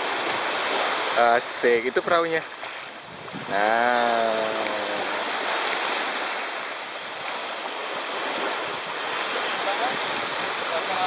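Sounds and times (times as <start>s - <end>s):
small waves washing onto sand: 0.0s - 11.0s.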